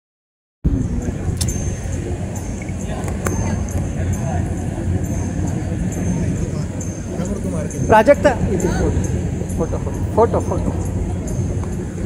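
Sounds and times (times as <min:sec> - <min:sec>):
faint high whine: 0:00.7 - 0:12.0.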